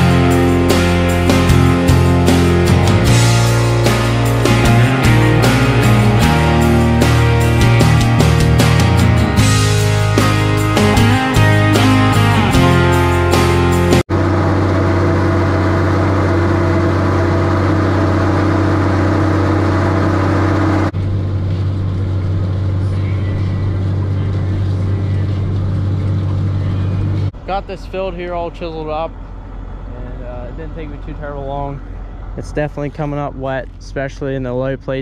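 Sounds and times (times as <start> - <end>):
rock music: 0.0 - 14.1
tractor diesel engine running: 0.0 - 35.0.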